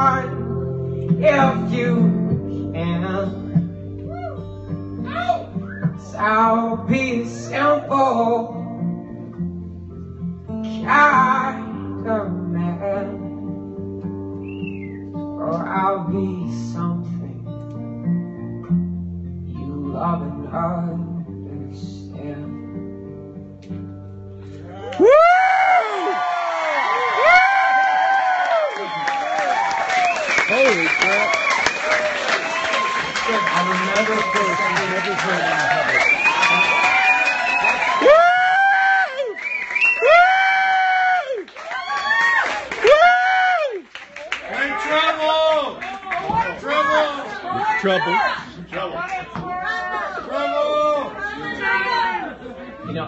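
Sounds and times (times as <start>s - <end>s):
man singing with acoustic guitar: 0.0s - 9.5s, 10.5s - 18.7s, 19.3s - 23.4s
audience cheering and applause: 24.7s - 52.4s.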